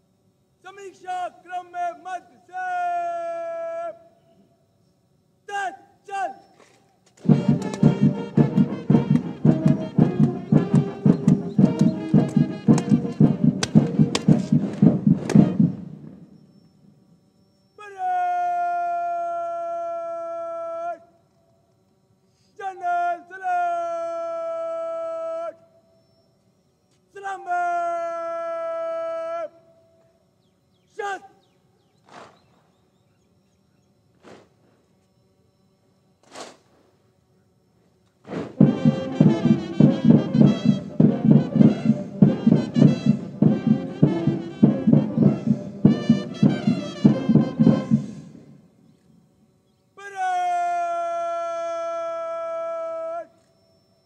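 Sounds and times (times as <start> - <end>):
person shouting drill commands: 0.6 - 4.1, 5.4 - 6.5, 17.8 - 21.1, 22.6 - 25.7, 27.1 - 29.7, 30.9 - 31.4, 50.0 - 53.4
military band music: 7.2 - 16.3, 38.5 - 48.6.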